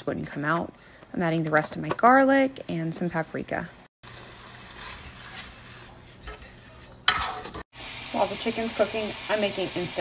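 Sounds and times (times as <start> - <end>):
chicken sizzling in butter: 4.0 - 10.0.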